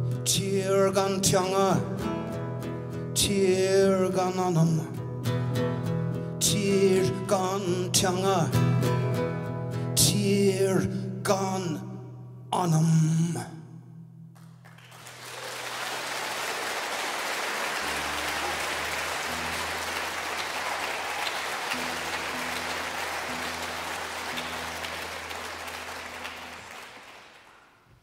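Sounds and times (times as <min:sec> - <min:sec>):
audience applauding: 0:14.4 - 0:28.0.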